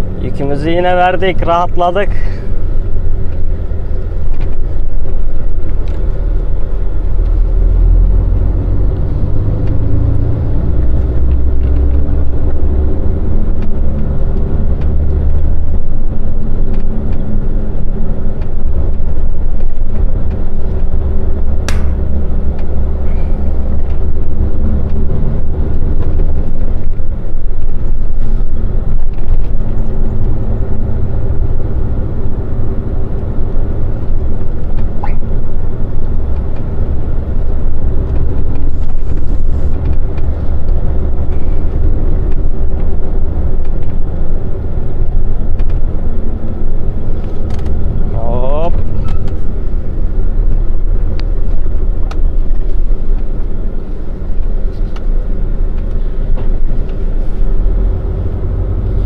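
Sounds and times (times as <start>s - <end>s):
truck diesel engine from cab: 0.0s - 59.0s
sharp click: 21.6s - 22.0s.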